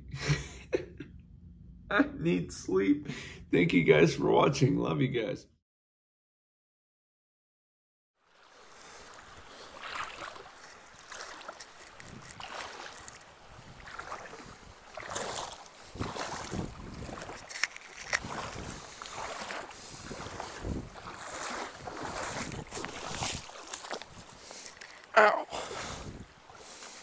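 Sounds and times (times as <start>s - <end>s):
feet wading through stream: 8.2s - 27.0s
water splashing and sloshing: 8.2s - 27.0s.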